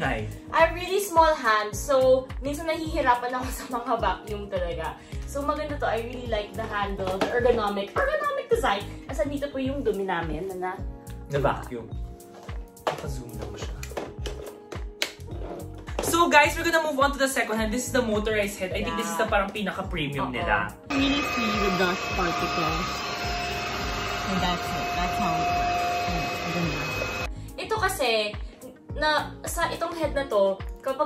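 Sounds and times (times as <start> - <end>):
background music: 0.0 - 31.0
music with low beat: 9.3 - 16.7
person speaking: 18.7 - 19.4
vacuum cleaner whine: 20.9 - 27.3.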